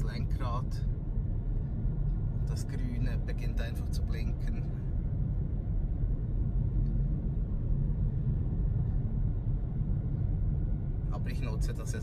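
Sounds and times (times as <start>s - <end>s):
road and tyre noise: 0.0s - 12.0s.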